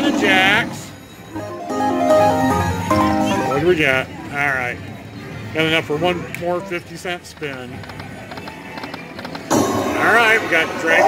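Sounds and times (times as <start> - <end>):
slot machine win music: 1.2 - 4.2.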